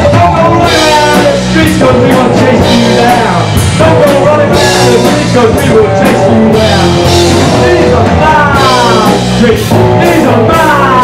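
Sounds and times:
bass guitar: 0.0 - 11.0
drum kit with cymbals: 0.0 - 11.0
electric guitar: 0.0 - 11.0
person singing: 0.0 - 11.0.

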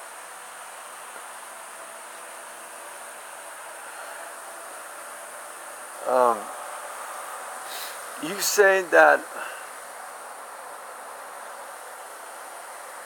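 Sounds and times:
insects trilling: 2.5 - 12.5.

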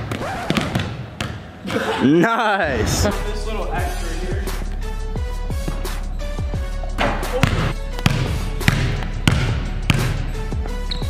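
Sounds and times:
background music with a beat: 3.0 - 11.0
basketball bouncing on wooden floor: 7.0 - 11.0.

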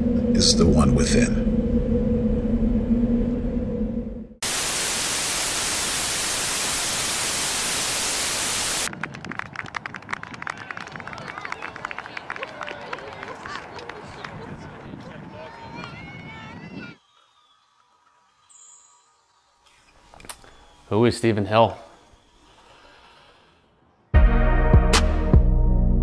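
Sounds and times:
low steady hum: 0.0 - 4.4
loud static hiss: 4.4 - 8.9.

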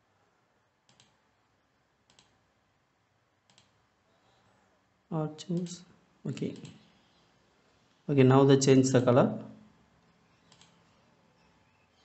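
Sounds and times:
computer mouse clicks: 0.9 - 1.2, 2.1 - 2.4, 3.5 - 3.8, 10.0 - 11.0.

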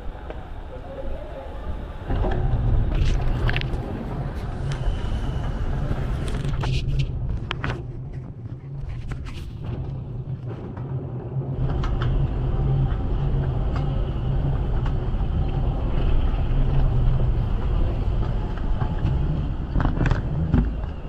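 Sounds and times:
moving walkway rumble: 0.0 - 21.0
terminal hall hum: 0.0 - 21.0.

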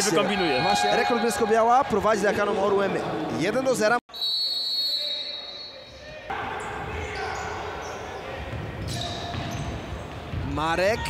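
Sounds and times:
referee's whistle: 4.1 - 6.0
ball bouncing on wooden court: 8.4 - 11.0.

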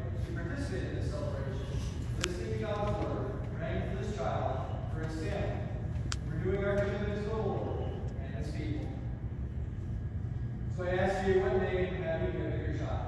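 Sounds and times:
man speaking in reverberant church: 0.0 - 9.3, 10.6 - 13.0.

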